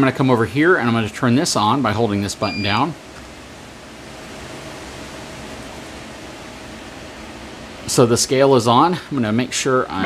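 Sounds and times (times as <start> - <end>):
faint steady hum: 0.0 - 10.0
steady background hiss: 0.0 - 10.0.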